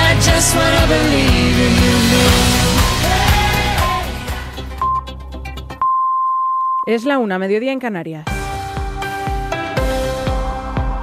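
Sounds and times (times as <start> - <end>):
radio time signal beep: 5.8 - 7.0
person announcing: 6.9 - 8.3.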